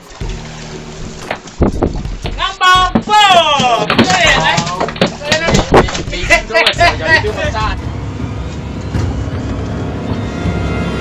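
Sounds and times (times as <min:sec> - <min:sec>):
outboard motor rumbling: 0:00.0 - 0:11.0
faint background music: 0:02.1 - 0:11.0.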